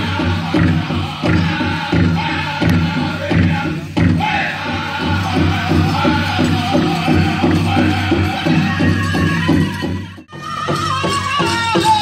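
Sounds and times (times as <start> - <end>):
big drum steady beat: 0.0 - 12.0
group singing: 0.0 - 12.0.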